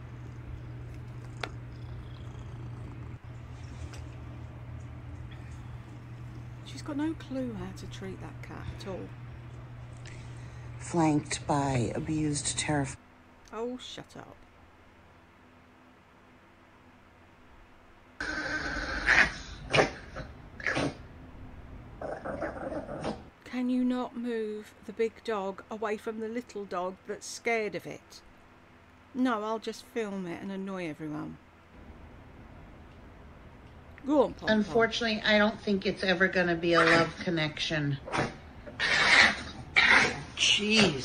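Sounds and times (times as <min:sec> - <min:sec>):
cat purring: 0:00.0 - 0:09.1
dog barking: 0:38.1 - 0:40.3.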